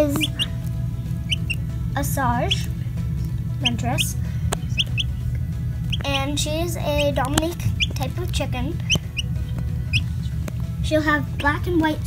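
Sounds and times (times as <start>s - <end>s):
chick peeping: 0.0s - 1.7s, 2.5s - 2.7s, 3.6s - 6.3s, 6.9s - 10.6s
background music: 0.0s - 12.0s.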